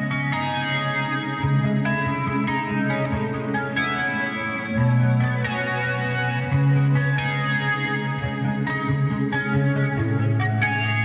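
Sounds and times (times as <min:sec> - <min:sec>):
electric guitar ringing notes: 0:00.0 - 0:11.0.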